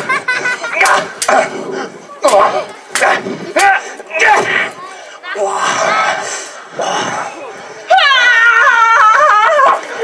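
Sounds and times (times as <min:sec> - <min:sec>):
people grunting: 0:00.0 - 0:10.0
people shouting: 0:00.6 - 0:10.0.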